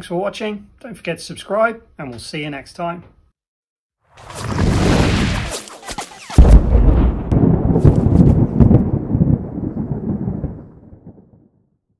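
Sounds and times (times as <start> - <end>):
sharp cracks: 4.3 - 8.8
deep crackling boom rumble: 6.4 - 11.6.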